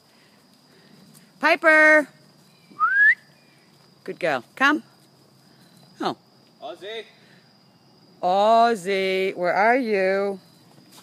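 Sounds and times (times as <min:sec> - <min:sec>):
person whistling rising: 0:02.8 - 0:03.3.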